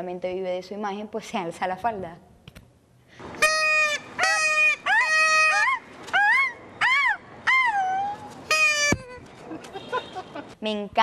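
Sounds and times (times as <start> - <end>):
shrill nasal honking cries: 3.4 - 5.8, 8.4 - 10.5.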